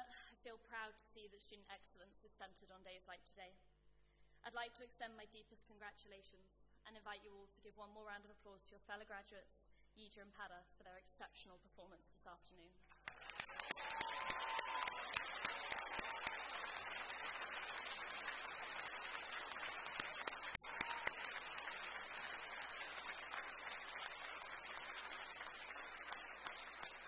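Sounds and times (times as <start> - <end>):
audience applauding: 12.9 - 27.0.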